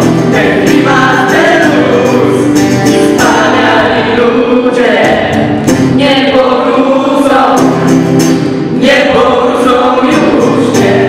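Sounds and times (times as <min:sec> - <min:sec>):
strummed acoustic guitar: 0:00.0 - 0:11.0
young voices singing in chorus: 0:00.0 - 0:11.0.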